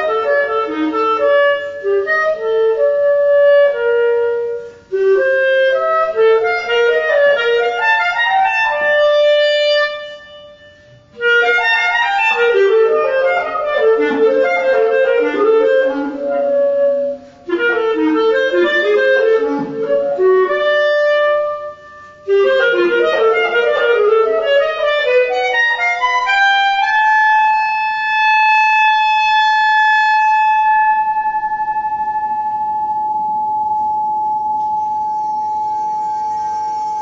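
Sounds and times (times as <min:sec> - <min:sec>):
solo clarinet playing: 0:00.0 - 0:37.0.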